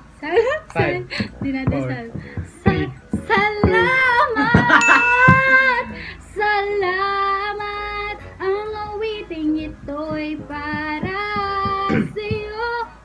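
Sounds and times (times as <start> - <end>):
woman singing slow melody: 0.2 - 13.0.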